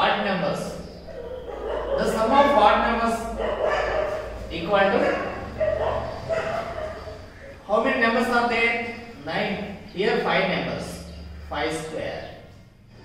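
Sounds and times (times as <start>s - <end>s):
man talking: 2.0s - 3.4s, 7.6s - 12.4s.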